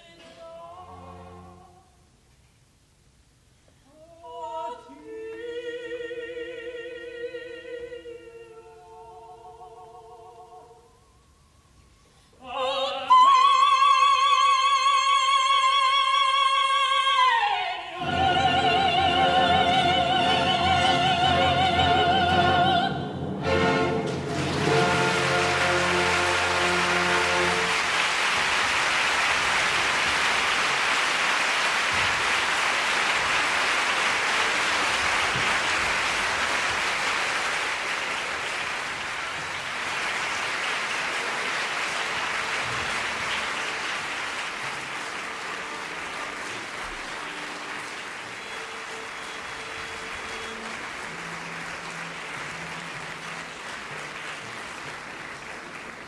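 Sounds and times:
orchestra held chord: 19.2s - 28.4s
audience applauding: 23.4s - 56.0s.

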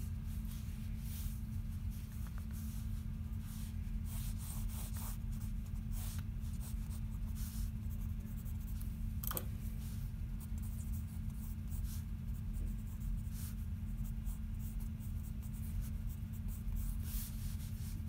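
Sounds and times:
steady low hum: 0.0s - 18.0s
pencil scratching on paper: 2.5s - 8.8s.

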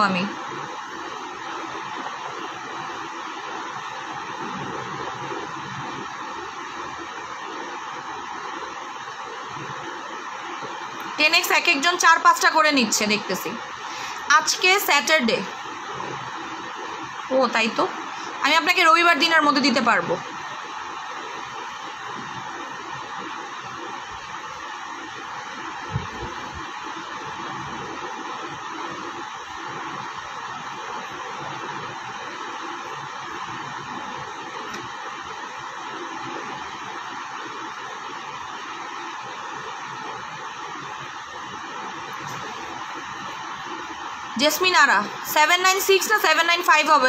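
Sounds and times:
steady background hiss: 0.0s - 47.0s.

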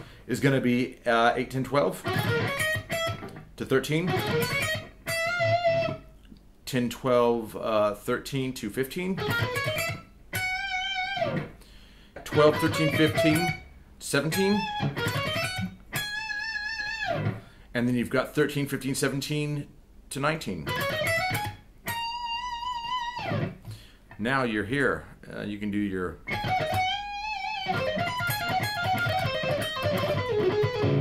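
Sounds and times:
electric guitar note bending down: 26.3s - 31.0s.

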